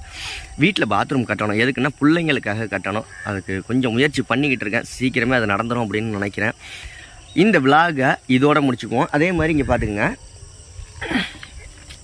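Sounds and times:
high-pitched insect chirring: 0.0 - 12.0
man talking: 0.5 - 6.6, 7.4 - 10.2.

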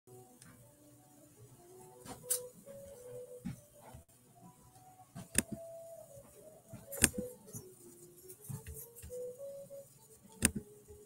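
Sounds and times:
faint slow background music: 0.1 - 11.0.

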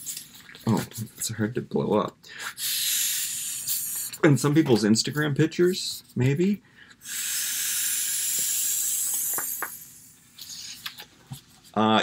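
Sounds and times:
person blowing into inflatable valve: 2.4 - 4.2, 7.0 - 10.8.

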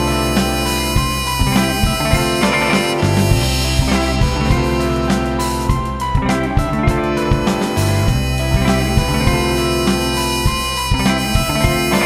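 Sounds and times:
drum kit beat: 0.0 - 12.0
electric guitar: 0.0 - 12.0
sustained keyboard tones: 0.0 - 12.0.

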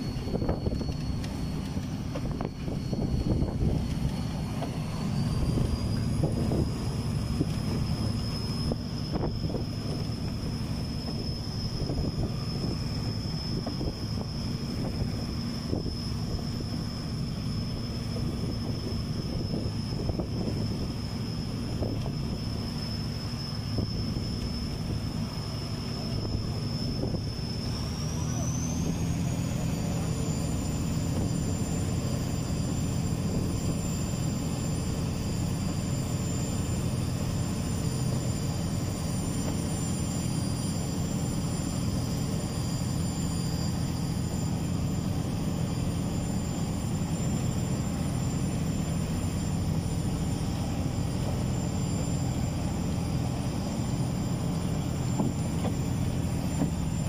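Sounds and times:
boat engine droning: 0.0 - 57.0
high-pitched whine: 0.0 - 57.0.

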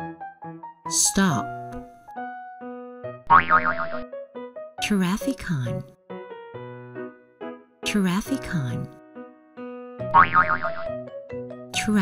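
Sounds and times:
light children's music: 0.0 - 12.0
cartoon boing sound effect: 3.3 - 4.1, 10.1 - 10.9.

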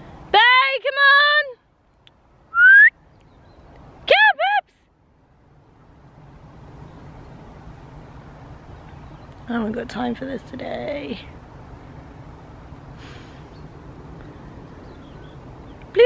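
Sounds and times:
low steady rushing noise: 0.0 - 16.0
woman calling: 0.3 - 1.6, 4.0 - 4.8
whistle through pursed lips: 2.5 - 3.0.

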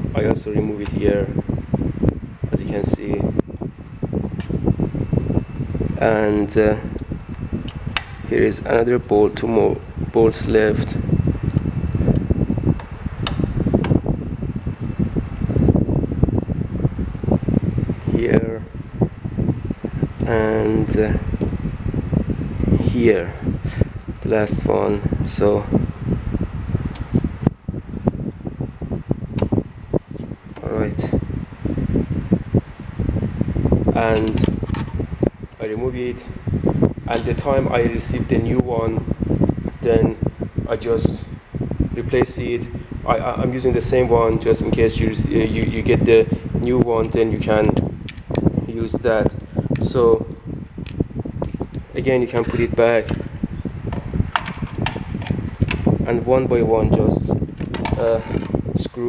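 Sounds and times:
steady low rumble: 0.0 - 59.0.

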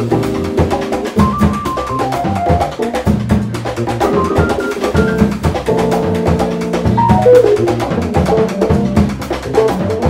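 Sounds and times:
busy drum kit: 0.0 - 10.0
jazz fusion band playing: 0.0 - 10.0
keyboard chords: 4.0 - 8.8.

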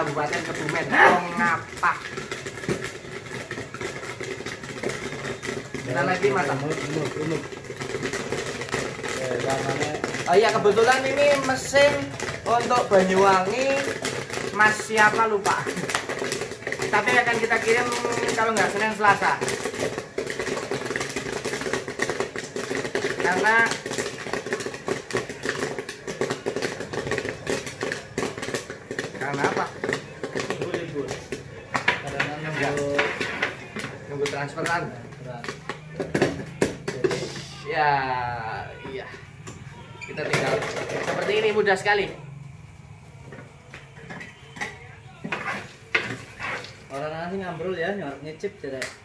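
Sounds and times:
popcorn machine hum: 0.0 - 49.0
popcorn popping: 0.0 - 49.0.

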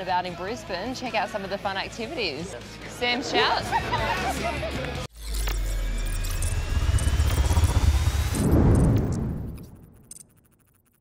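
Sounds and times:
thin rising whine: 5.2 - 10.8
deep pulsing rumble: 6.3 - 9.7.

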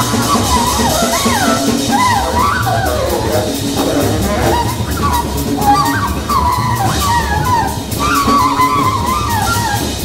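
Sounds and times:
double bass: 0.0 - 10.0
drums with cymbals: 0.0 - 10.0
saxophone sliding phrases: 0.0 - 10.0.

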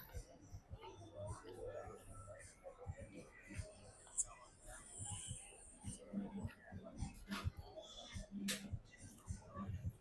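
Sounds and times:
faint low voices: 0.0 - 10.0.

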